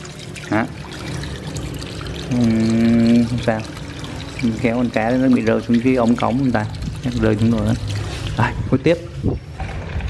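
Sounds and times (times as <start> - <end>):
water pouring from siphon hose: 0.0 - 10.0.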